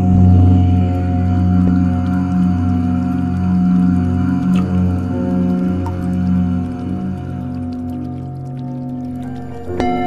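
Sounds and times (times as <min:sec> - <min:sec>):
ambient meditation music: 0:00.0 - 0:10.0
deep chanted om drone: 0:00.0 - 0:10.0.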